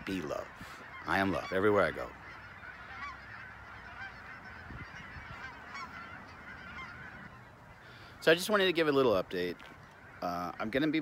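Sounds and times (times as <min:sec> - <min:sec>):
geese honking: 0:00.0 - 0:11.0.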